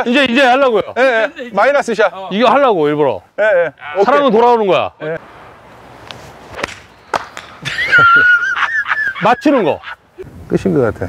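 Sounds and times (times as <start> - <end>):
golf club swish: 5.8 - 7.6
golf club striking ball: 6.0 - 7.6.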